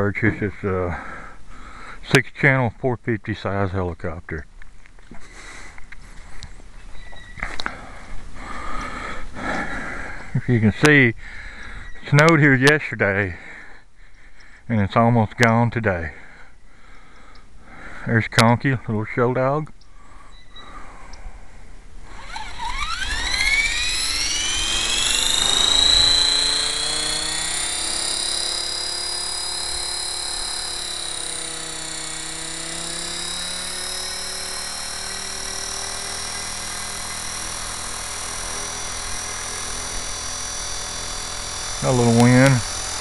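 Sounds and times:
rc helicopter motor whine: 20.1 - 21.1, 22.0 - 43.0.

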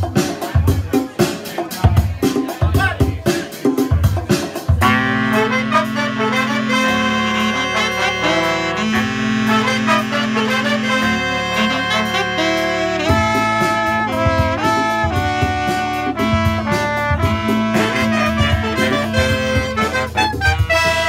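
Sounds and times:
brass band playing: 4.8 - 21.0.

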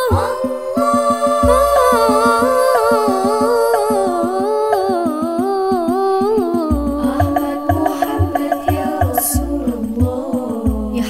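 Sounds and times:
woman singing: 0.0 - 11.0.

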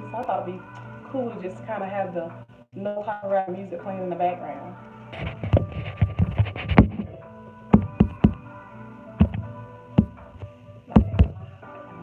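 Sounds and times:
background music with held tones: 0.0 - 12.0
sharp knocks: 11.0 - 11.4.

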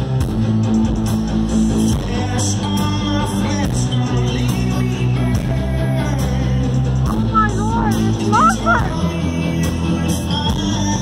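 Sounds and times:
bass notes: 0.0 - 11.0
drums and cymbals: 0.0 - 11.0.

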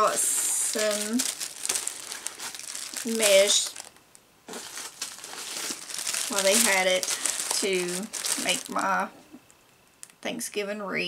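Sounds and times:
plastic wrapping crinkling: 0.0 - 9.5.

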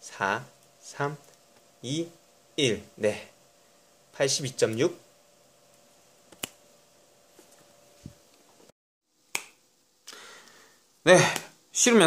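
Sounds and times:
finger snap: 9.3 - 10.6.

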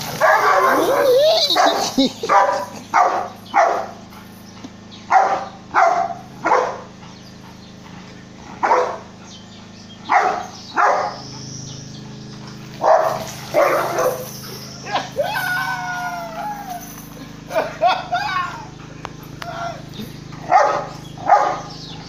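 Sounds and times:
dog barking sharply: 0.2 - 3.9, 5.1 - 6.8, 10.1 - 11.2, 20.5 - 21.7
wavering animal call: 0.7 - 2.1.

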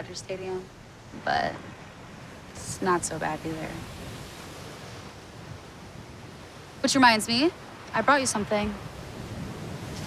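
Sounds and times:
distant ocean surf: 0.0 - 10.0
wind: 0.0 - 10.0.

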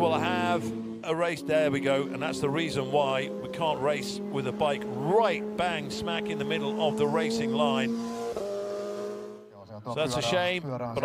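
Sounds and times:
motorcycle engine passing: 0.0 - 9.4.

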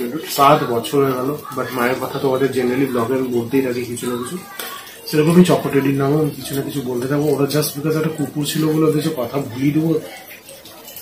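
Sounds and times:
man talking: 0.0 - 10.1.

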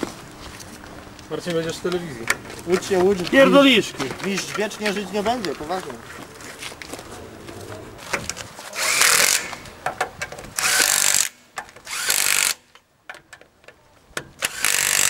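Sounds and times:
cordless power driver whirring: 8.8 - 9.8, 10.5 - 12.6, 14.4 - 15.0.

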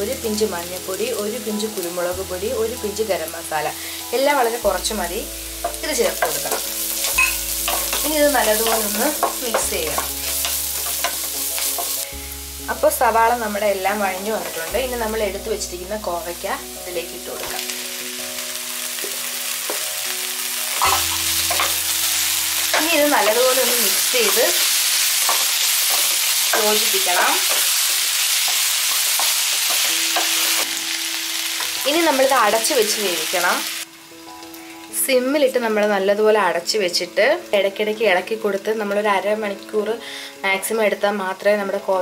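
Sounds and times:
background music: 0.0 - 42.0
vegetables sizzling in oil: 0.0 - 42.0
spatula scraping wok: 20.7 - 30.7.

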